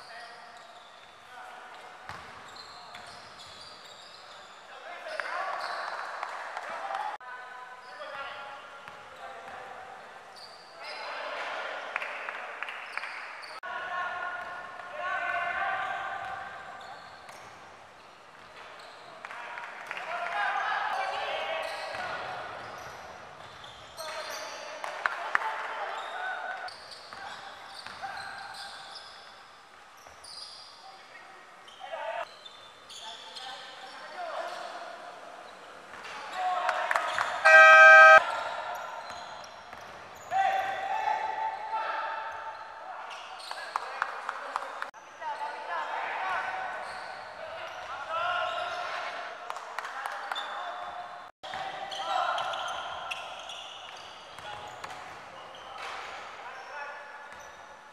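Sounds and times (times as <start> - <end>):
sneakers squeaking: 0.0 - 6.3, 7.8 - 11.1, 15.8 - 19.2, 21.6 - 24.7, 25.9 - 30.8, 35.4 - 40.4, 46.8 - 47.9, 51.5 - 56.7, 57.3 - 57.7
loud horn-like buzzer: 37.4 - 38.2
players calling out: 37.4 - 38.4.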